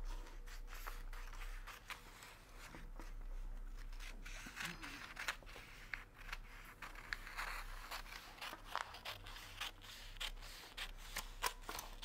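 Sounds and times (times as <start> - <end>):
scissors snipping paper: 3.9 - 12.0.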